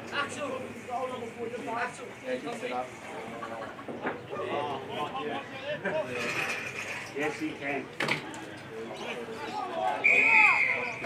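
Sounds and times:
people calling out and talking: 0.0s - 11.0s.

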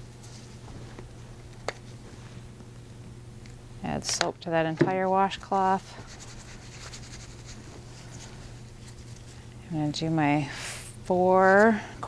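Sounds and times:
low steady hum: 0.0s - 12.0s
rubbing and scratching of cloth: 5.0s - 10.1s.

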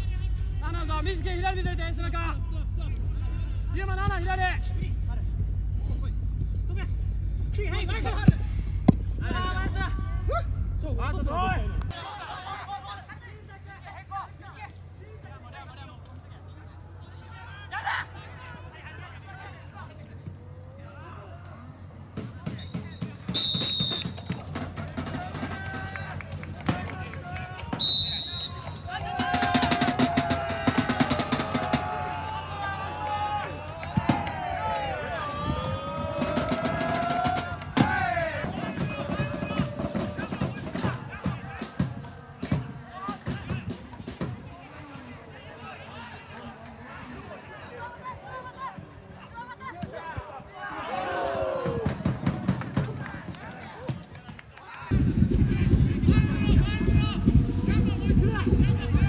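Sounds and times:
distant voices shouting: 0.0s - 59.0s
players calling out: 0.0s - 59.0s
referee whistle blast: 22.5s - 24.3s, 27.8s - 28.8s.

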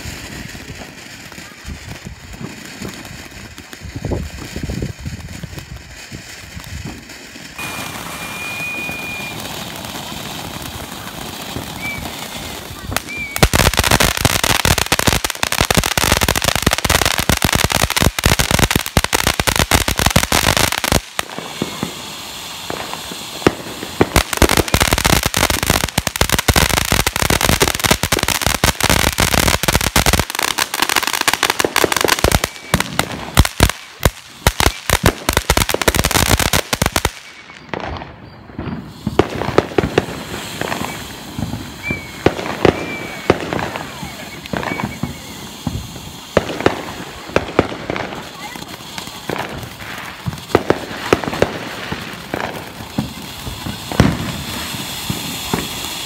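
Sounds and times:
fireworks crackling: 0.0s - 56.0s.

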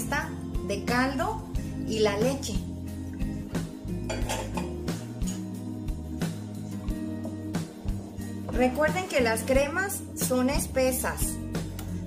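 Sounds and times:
background music held notes: 0.0s - 12.0s
spoon knocking on metal pot: 4.1s - 4.8s.

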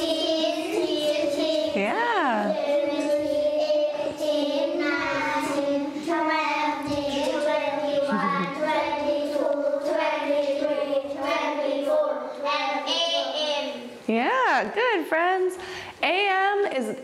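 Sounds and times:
children singing in unison: 0.0s - 1.8s, 2.6s - 13.2s.

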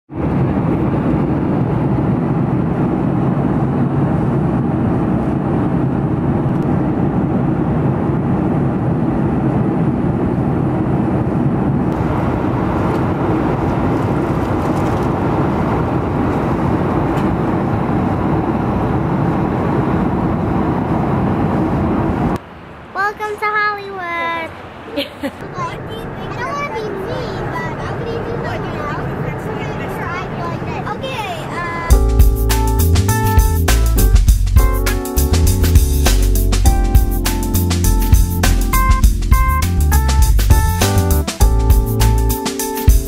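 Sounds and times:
jet airliner cabin noise: 0.1s - 43.0s.

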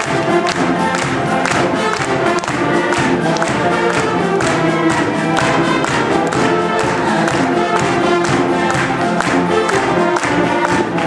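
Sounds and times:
concert band playing chords: 0.0s - 11.0s.

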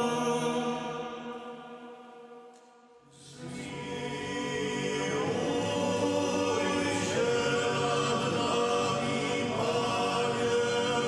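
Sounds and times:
men's choir singing a hymn: 0.0s - 1.5s, 3.1s - 11.0s.

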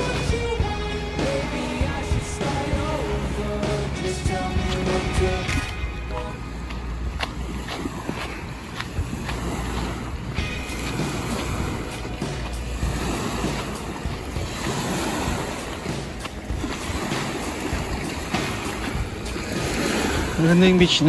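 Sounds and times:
waves lapping on pebbly shore: 1.6s - 21.0s
wind buffeting microphone: 4.3s - 21.0s.

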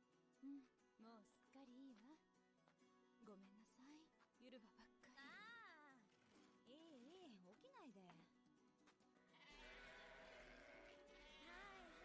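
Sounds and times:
soft music: 0.0s - 12.0s
faint sheep bleating: 9.2s - 12.0s.

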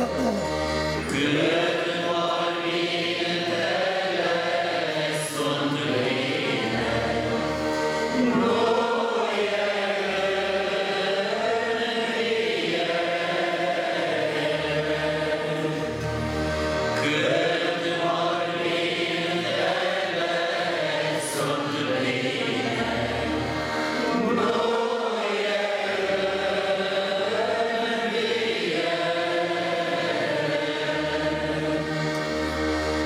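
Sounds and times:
group singing a hymn: 0.1s - 33.0s.

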